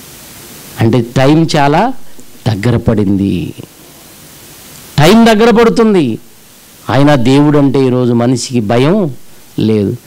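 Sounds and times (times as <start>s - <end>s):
low background hiss: 0.0s - 10.0s
man preaching into a microphone: 0.8s - 3.7s, 5.0s - 10.0s.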